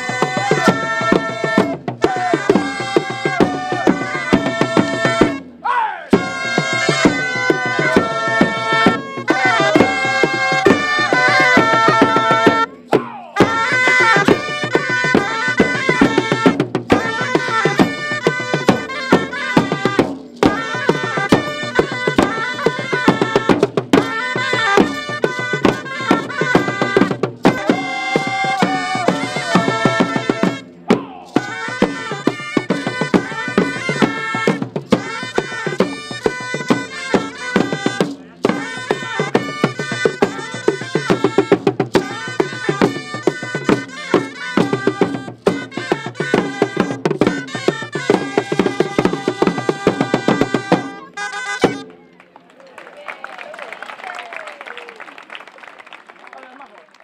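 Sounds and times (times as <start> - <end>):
drums beating steady rhythm: 0.0 - 52.0
faint crowd noise: 16.6 - 46.8, 49.2 - 57.0.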